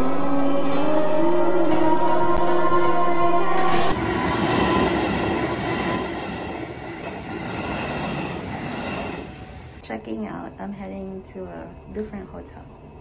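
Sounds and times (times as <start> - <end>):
train wheels rushing on rails: 0.0 - 9.8.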